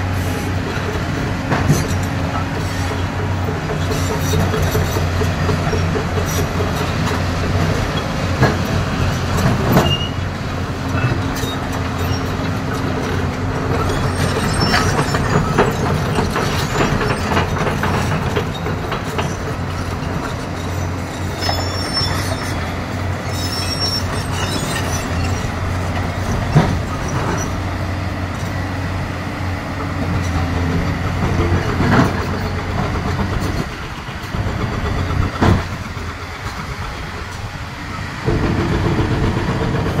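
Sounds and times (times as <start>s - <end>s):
excavator diesel engine running: 0.0s - 40.0s.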